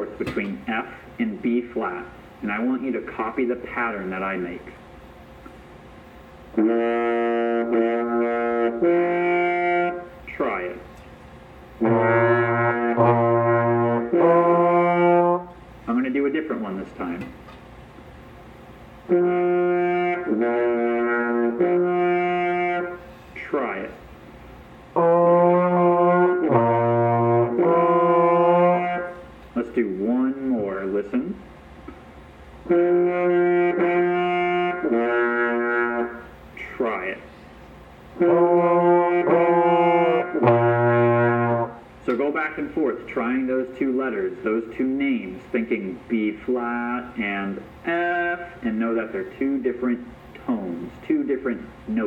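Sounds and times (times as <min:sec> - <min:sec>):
trombone held notes: 0:06.5 - 0:10.8, 0:11.8 - 0:15.5, 0:19.1 - 0:23.9, 0:24.9 - 0:29.3, 0:32.6 - 0:36.3, 0:38.2 - 0:41.8, 0:47.9 - 0:48.6.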